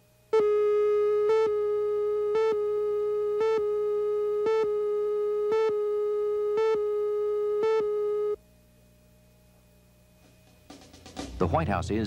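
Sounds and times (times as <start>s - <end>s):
faint hum: 0.0s - 12.0s.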